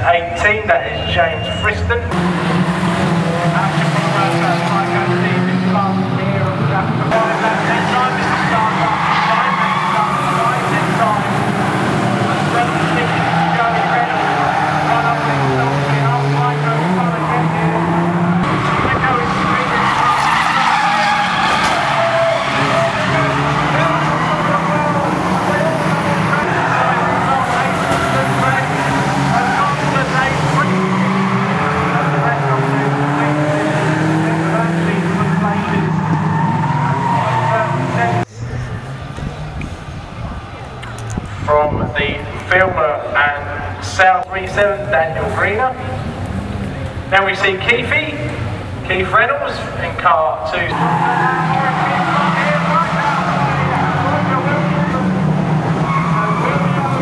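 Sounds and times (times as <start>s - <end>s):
racing car engines revving: 0.0s - 57.0s.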